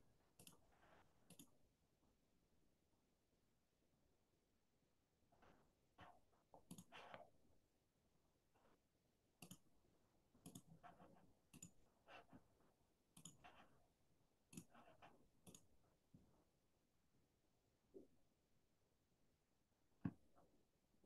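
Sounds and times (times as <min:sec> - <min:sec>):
computer mouse clicks: 0:00.4 - 0:01.6, 0:06.6 - 0:07.3, 0:09.4 - 0:09.7, 0:10.4 - 0:12.3, 0:13.2 - 0:13.7, 0:14.5 - 0:15.7.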